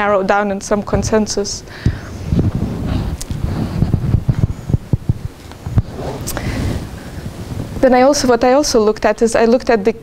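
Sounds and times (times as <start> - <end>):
microphone handling thumps and rustling: 1.8 - 8.5.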